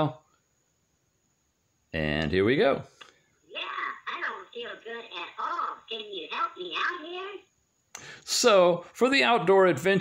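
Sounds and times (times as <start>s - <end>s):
processed voice through small speaker: 3.5s - 7.5s.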